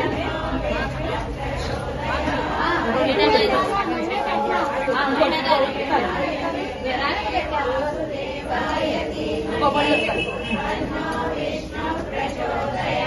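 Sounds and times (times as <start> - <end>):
women chattering: 0.0 - 11.6.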